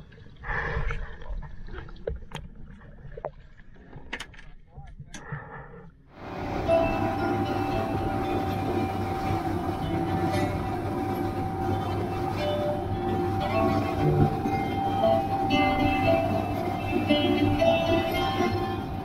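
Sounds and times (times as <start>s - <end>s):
motorboat engine rumble: 6.1s - 19.0s
background music: 6.2s - 19.0s.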